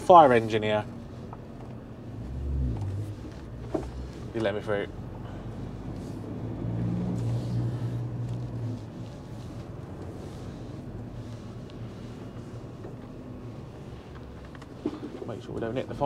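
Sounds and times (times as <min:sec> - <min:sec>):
lorry diesel engine droning: 0:00.0 - 0:16.0.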